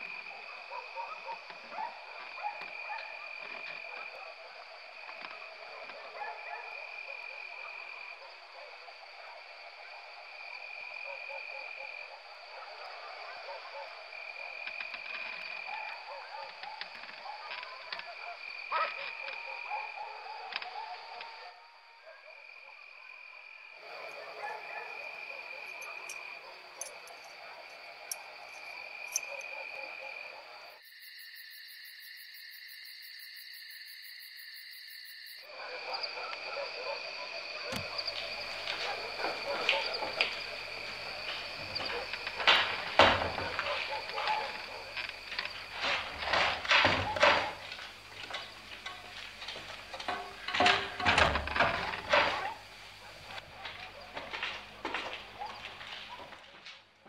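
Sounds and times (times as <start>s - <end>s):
frogs and insects chorus: 0.0s - 56.4s.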